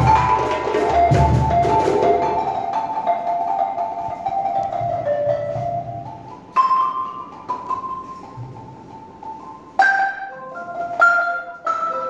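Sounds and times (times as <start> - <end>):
balafon notes: 0.0 - 12.0.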